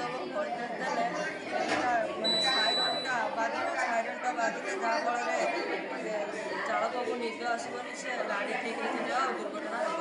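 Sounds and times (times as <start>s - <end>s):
voices chattering in echoing room: 0.0s - 10.0s.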